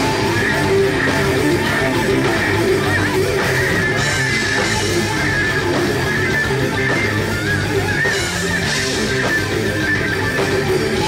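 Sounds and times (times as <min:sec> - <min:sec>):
heavy metal band playing live: 0:00.0 - 0:11.0
high bending guitar line: 0:00.0 - 0:11.0.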